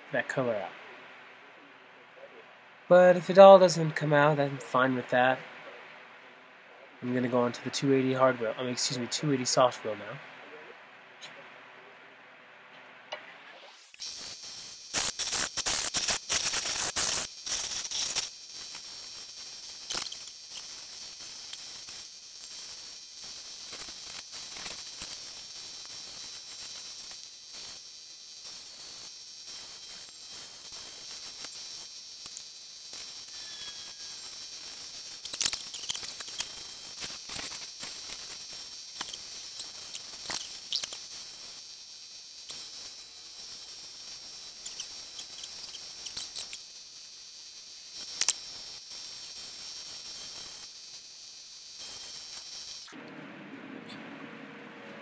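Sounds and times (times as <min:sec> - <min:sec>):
stone squeaking on grinding wheel: 0:33.3 - 0:34.3, 0:44.6 - 0:46.6
grinding machine whirring: 0:42.4 - 0:55.0.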